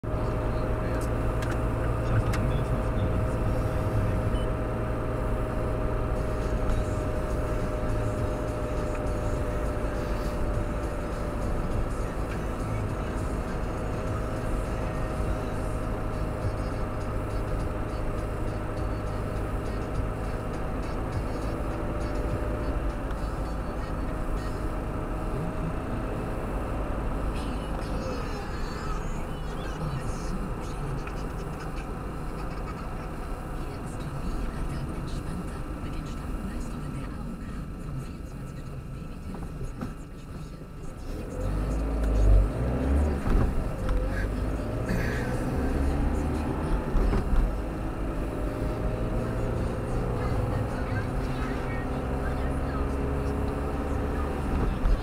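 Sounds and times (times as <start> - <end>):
car engine hum: 0.0 - 55.0
tyre road rumble: 0.0 - 55.0.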